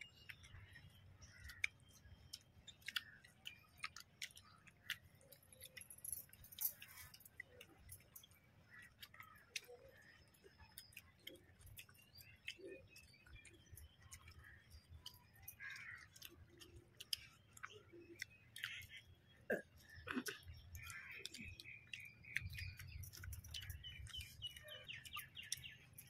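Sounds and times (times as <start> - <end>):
soft chewing and lip smacks: 0.0 - 26.0.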